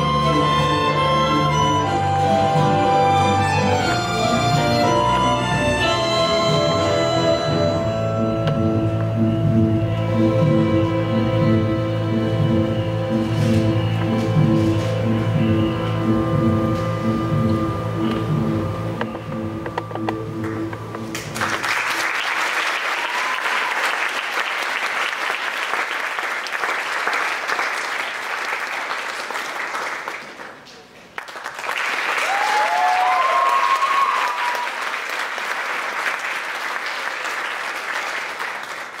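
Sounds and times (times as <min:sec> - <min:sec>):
audience applauding: 0:20.4 - 0:39.0
cheers: 0:22.1 - 0:24.8, 0:31.9 - 0:35.5.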